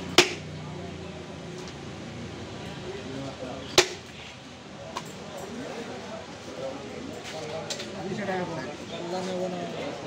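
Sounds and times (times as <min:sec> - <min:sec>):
cleaver chopping into wooden block: 0:00.1 - 0:00.4.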